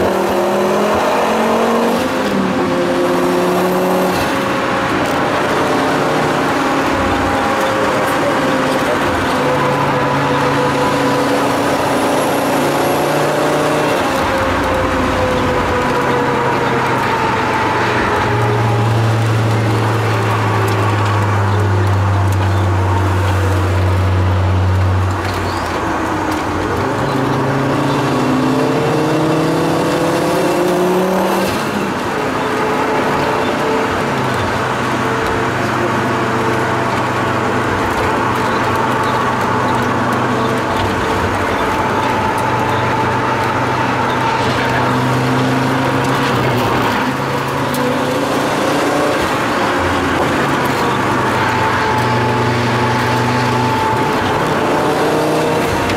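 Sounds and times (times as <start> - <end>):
turbocharged engine pulling hard: 0.0 - 55.9.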